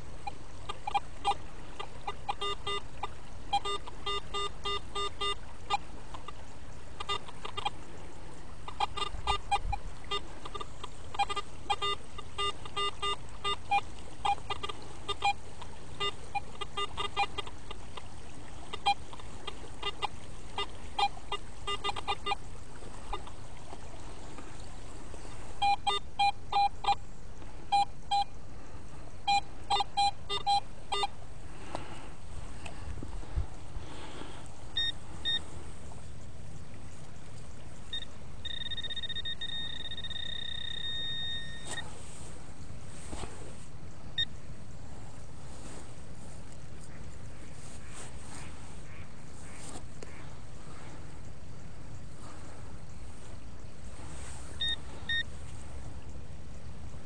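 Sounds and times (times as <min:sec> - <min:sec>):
metal detector short beeps: 0:00.2 - 0:01.4, 0:02.0 - 0:05.8, 0:07.0 - 0:07.7, 0:08.7 - 0:15.4, 0:16.0 - 0:17.8, 0:19.8 - 0:22.4, 0:25.6 - 0:27.0, 0:27.7 - 0:28.4, 0:29.2 - 0:31.1, 0:34.8 - 0:35.5, 0:37.9 - 0:41.9, 0:54.5 - 0:55.3.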